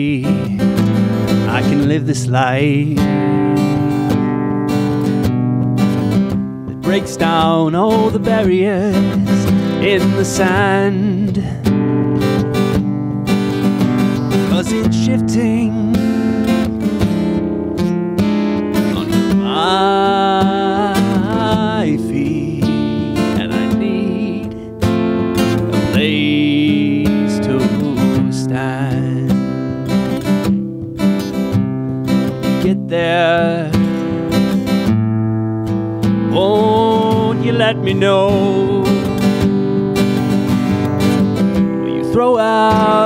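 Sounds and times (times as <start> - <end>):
man singing: 0.0 - 4.3, 6.7 - 12.0, 14.0 - 16.8, 18.8 - 30.1, 32.2 - 34.7, 36.1 - 39.6, 41.5 - 43.0
acoustic guitar strumming: 0.0 - 43.0.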